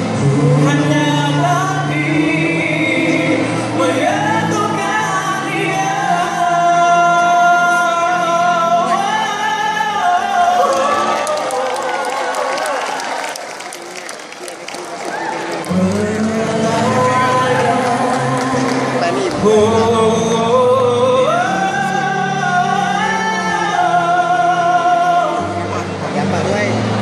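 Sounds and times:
vocal group singing in harmony: 0:00.0 - 0:12.0, 0:15.7 - 0:26.0
audience applause: 0:10.6 - 0:19.4.

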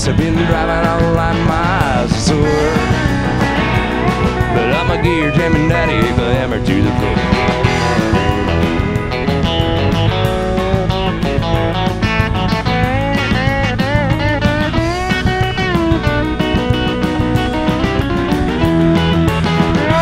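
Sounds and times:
bass: 0:00.0 - 0:20.0
drums: 0:00.0 - 0:20.0
electric guitar solo: 0:00.4 - 0:20.0.

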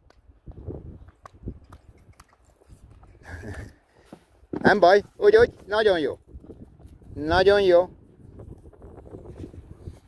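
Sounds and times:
horse hooves cantering on grass: 0:00.5 - 0:07.4.

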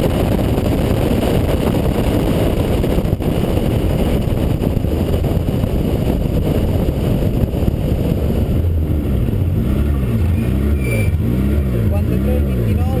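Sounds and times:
car engine revving up and down: 0:00.0 - 0:13.0
road and wind rumble: 0:00.0 - 0:13.0.

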